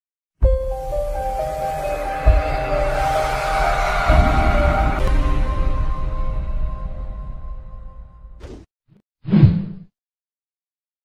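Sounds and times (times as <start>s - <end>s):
intro music: 0.4s - 8.4s.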